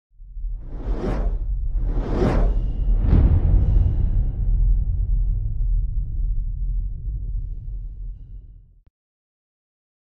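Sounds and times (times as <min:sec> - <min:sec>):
deep low rumble: 0:00.2 - 0:08.9
whoosh sound effect: 0:00.6 - 0:03.8.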